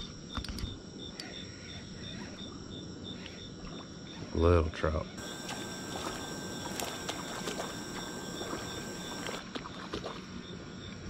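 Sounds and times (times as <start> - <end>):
cricket chirping: 0.0 - 9.4
sharp clicks: 5.2 - 9.4.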